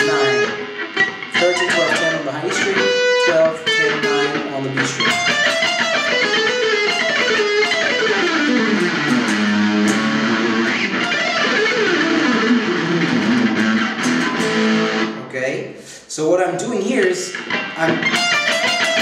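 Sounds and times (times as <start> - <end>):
electric guitar fast scale runs: 5.1 - 15.1.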